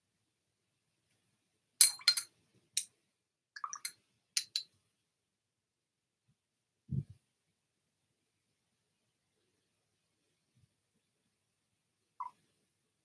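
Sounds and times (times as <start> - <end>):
brush clinking against glass jar: 4.4 - 4.6.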